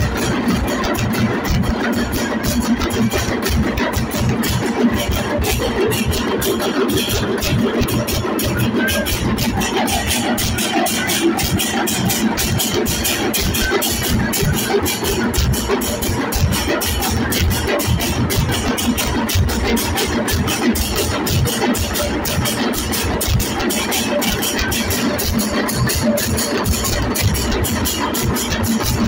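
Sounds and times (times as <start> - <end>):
drum ensemble playing fast rhythm: 0.0 - 29.0
hand cymbals clashing: 0.0 - 29.0.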